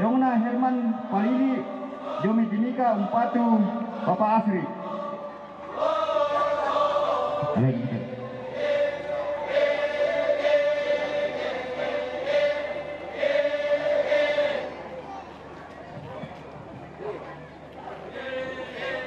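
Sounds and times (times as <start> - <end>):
group chanting in unison: 0.5 - 14.9, 18.1 - 19.0.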